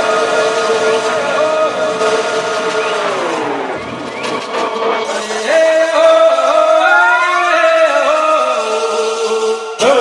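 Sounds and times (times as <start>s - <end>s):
noisy rising sweep: 0.0s - 5.6s
electronic dance music: 0.0s - 10.0s.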